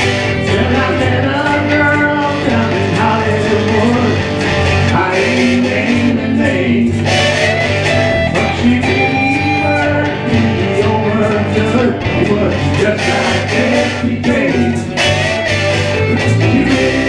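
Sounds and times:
guitar: 0:00.0 - 0:17.0
low bass: 0:00.0 - 0:17.0
voices singing: 0:00.0 - 0:17.0.

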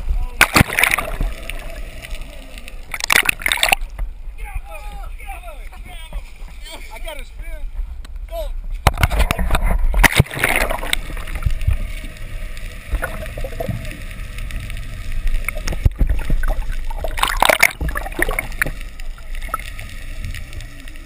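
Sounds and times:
water splashing: 0:00.0 - 0:04.2, 0:08.8 - 0:21.0
water sloshing and gurgling: 0:00.0 - 0:04.3, 0:08.6 - 0:21.0.

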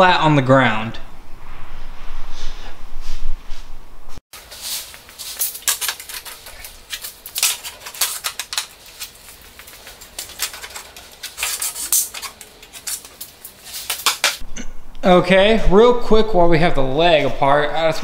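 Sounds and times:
tool clicks and knocks on concrete: 0:04.8 - 0:14.4.

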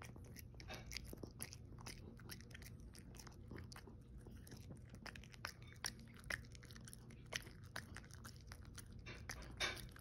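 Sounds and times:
dog chewing crunchy food: 0:00.0 - 0:10.0.

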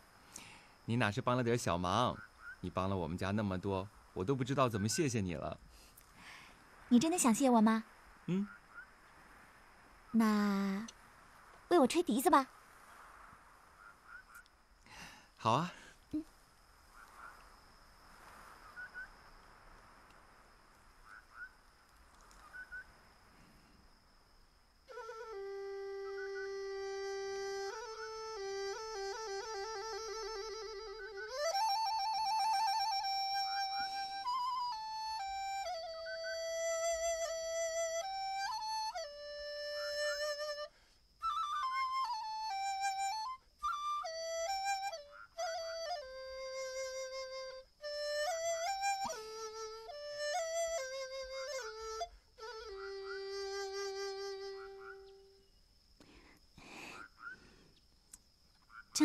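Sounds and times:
bamboo flute melody: 0:24.8 - 0:55.5.

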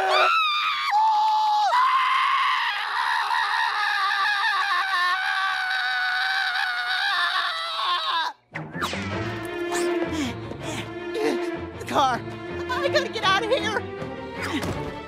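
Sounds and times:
cartoon boy screaming: 0:00.0 - 0:08.4.

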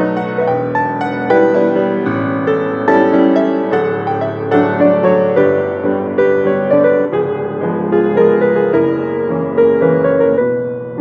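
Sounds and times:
grand piano: 0:00.0 - 0:11.0.

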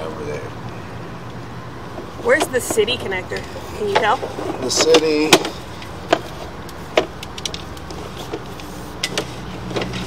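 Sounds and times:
low mechanical hum: 0:00.0 - 0:10.0.

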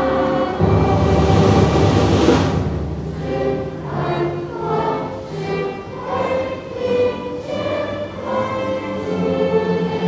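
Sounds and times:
choir singing held notes: 0:00.0 - 0:10.0
orchestral accompaniment: 0:00.0 - 0:10.0.

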